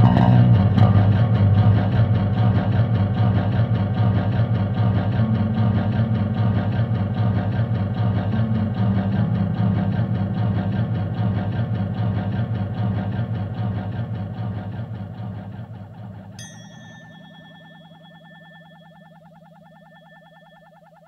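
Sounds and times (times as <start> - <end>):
buzzy drone of amplified instruments: 0.0 - 21.0.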